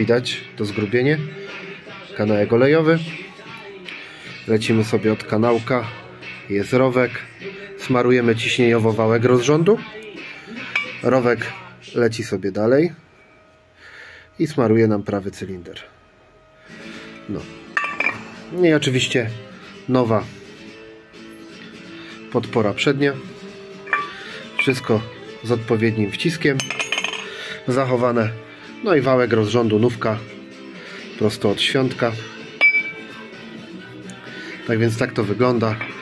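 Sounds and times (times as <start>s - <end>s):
metallic clink: 10.8s - 11.0s, 23.9s - 24.9s, 26.6s - 27.3s, 32.6s - 33.0s.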